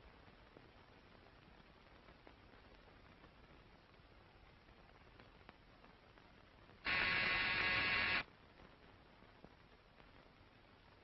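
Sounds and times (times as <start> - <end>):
electric buzzer: 6.9 - 8.2.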